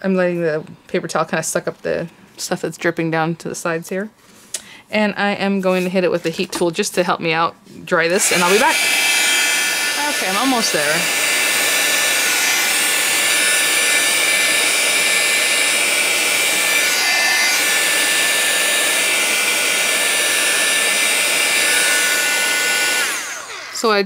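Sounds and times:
heat tool fan whining: 7.8s - 24.0s.

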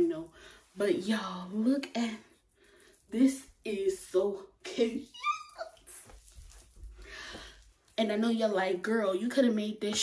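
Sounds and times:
woman squealing laugh: 5.0s - 5.8s
faint sounds of moving about: 5.5s - 8.0s.

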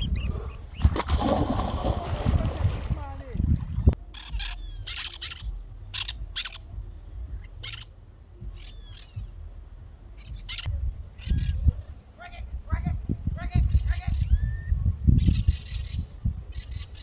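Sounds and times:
wind rumble on microphone: 0.0s - 17.0s
small birds chirping: 4.1s - 9.5s, 10.1s - 12.0s.

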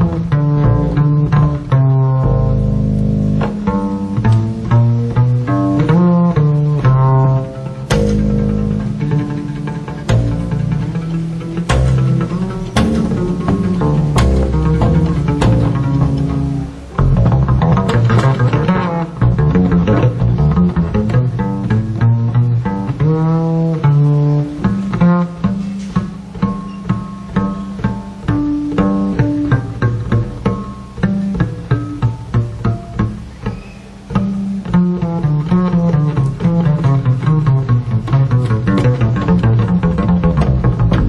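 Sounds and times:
jazz trio music: 0.0s - 41.0s
plucked double bass notes: 0.0s - 41.0s.

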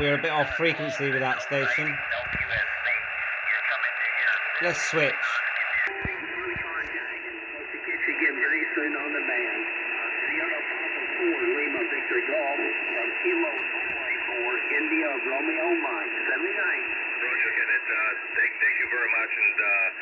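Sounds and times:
radio band noise hiss: 0.0s - 20.0s
thin radio voice: 0.0s - 20.0s.

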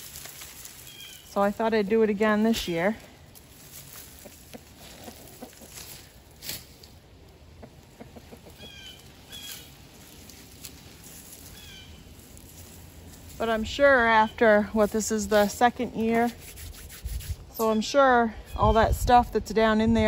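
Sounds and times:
rustling plant stalks and soil: 0.0s - 18.0s
birds chirping: 7.6s - 10.2s, 11.3s - 12.2s.

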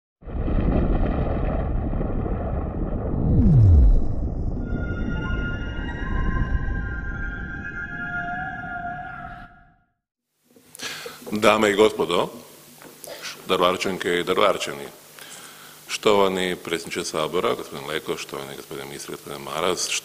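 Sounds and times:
low boom: 0.2s - 5.6s
deep rumble: 0.2s - 7.4s
falling swoosh: 3.1s - 6.8s.

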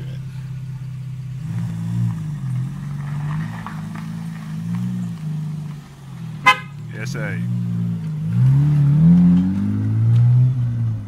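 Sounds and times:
car engine accelerating: 0.0s - 11.0s.

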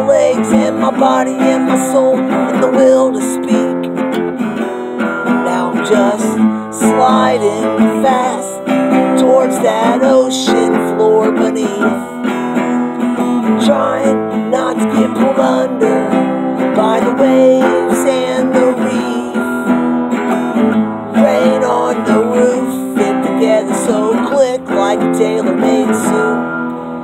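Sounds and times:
acoustic guitar strumming: 0.0s - 27.0s
man singing: 0.0s - 27.0s.

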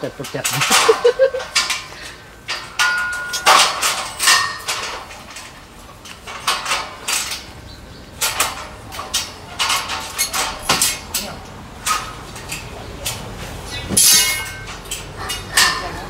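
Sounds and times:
scaffold tubes clanking together: 0.0s - 16.0s.

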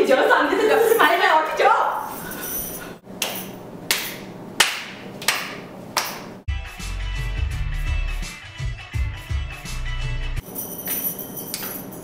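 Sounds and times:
sharp hand claps: 3.2s - 6.4s.

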